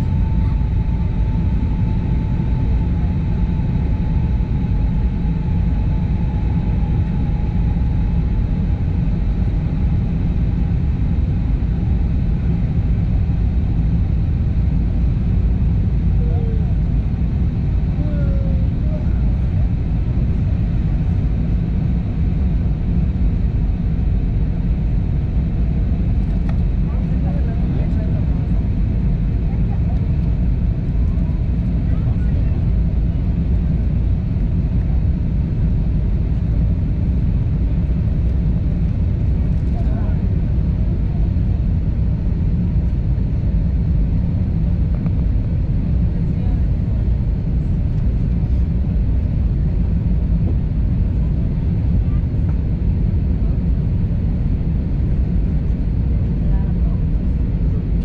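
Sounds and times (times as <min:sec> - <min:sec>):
jet engine rumble and rushing air: 0:00.0 - 0:58.0.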